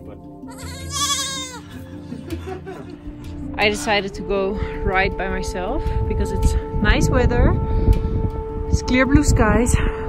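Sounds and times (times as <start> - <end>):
young goat bleating: 0.4 - 1.8.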